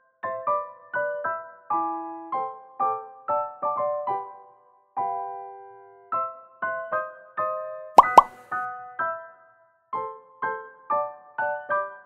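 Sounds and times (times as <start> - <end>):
rising plop sound effects: 8.0 - 8.3.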